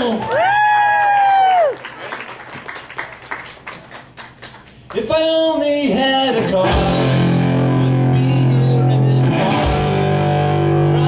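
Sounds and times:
person cheering woo: 0.0 - 1.9
audience clapping: 0.0 - 5.4
long held shout: 0.3 - 1.8.

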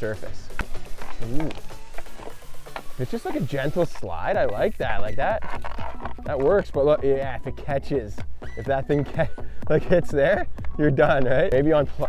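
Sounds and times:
puck gliding on asphalt: 0.1 - 12.0.

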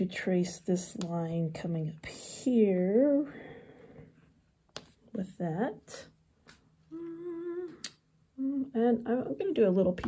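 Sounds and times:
woman humming a steady note: 6.9 - 9.0.

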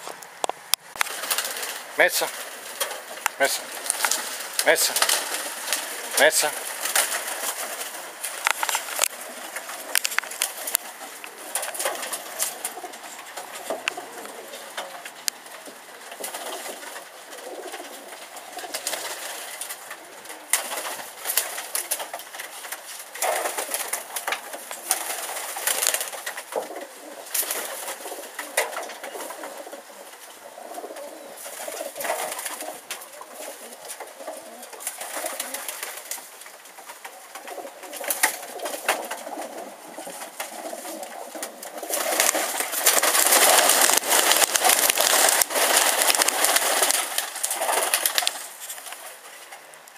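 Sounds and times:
wings fluttering: 0.0 - 49.9
pigeons cooing: 1.0 - 49.8.

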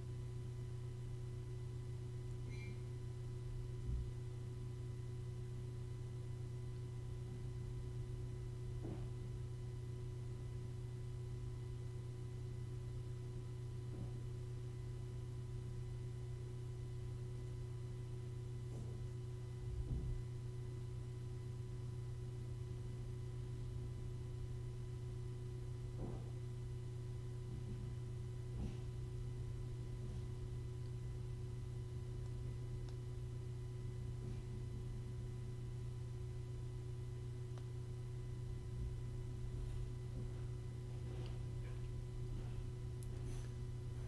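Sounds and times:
steady low hum: 0.0 - 44.0.

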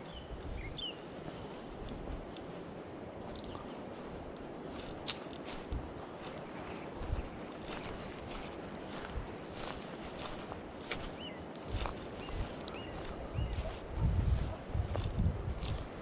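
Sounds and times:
footsteps on grass: 0.0 - 16.0
wind on microphone: 0.0 - 16.0.

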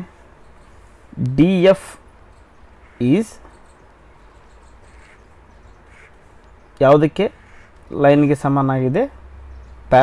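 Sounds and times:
low steady hiss: 0.0 - 10.0
man talking: 1.1 - 2.0, 3.0 - 3.4, 6.8 - 9.2.

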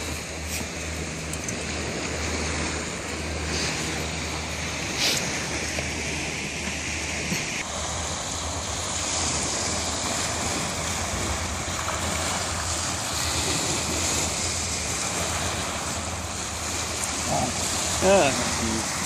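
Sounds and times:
small waves breaking on beach: 0.0 - 19.0
wind: 0.0 - 19.0.

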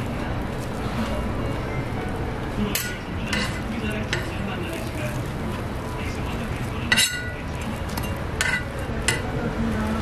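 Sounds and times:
metal spatula clinking: 2.8 - 4.4, 6.9 - 9.3.

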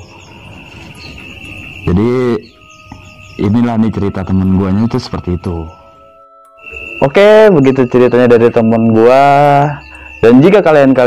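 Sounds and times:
insects chirping: 0.0 - 11.0.

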